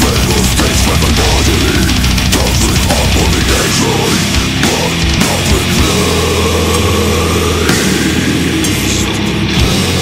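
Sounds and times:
distorted guitars and bass: 0:00.0 - 0:10.0.

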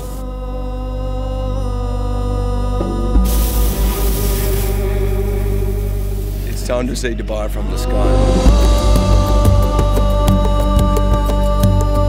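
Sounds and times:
propane burner rushing: 0:00.0 - 0:00.2, 0:03.2 - 0:06.8
background music sustained note: 0:00.0 - 0:12.0.

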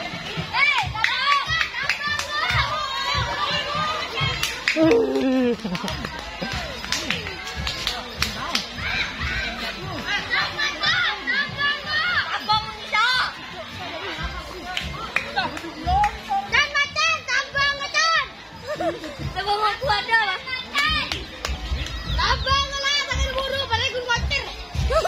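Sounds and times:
children shouting and chattering: 0:00.0 - 0:25.0.

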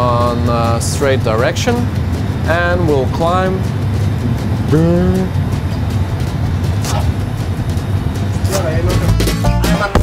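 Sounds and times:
low engine rumble: 0:00.0 - 0:10.0.

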